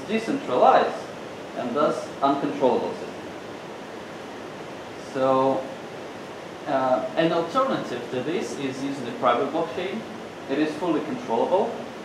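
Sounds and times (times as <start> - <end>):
room tone hiss: 0.0 - 12.0.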